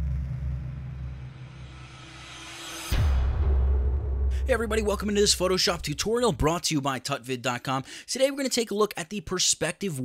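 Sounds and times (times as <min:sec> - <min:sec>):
deep steady rumble: 0:00.0 - 0:01.6
impact hit: 0:00.0 - 0:05.1.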